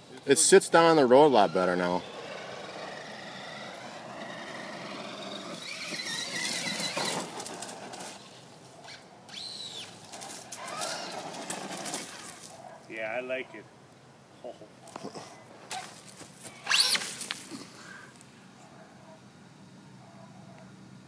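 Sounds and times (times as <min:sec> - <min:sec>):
electric motor whining: 0:00.7 - 0:08.2, 0:08.9 - 0:12.2, 0:16.6 - 0:17.2.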